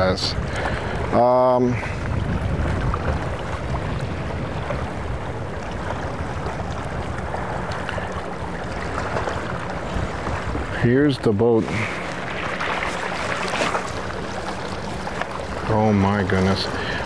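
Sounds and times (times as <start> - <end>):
hiss of wind and water: 0.0 - 17.0
outboard motors rumbling: 0.0 - 17.0.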